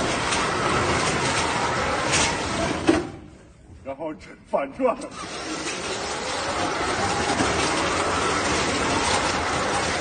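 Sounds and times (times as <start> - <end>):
robot tracks grinding and rattling: 0.0 - 3.1, 5.0 - 10.0.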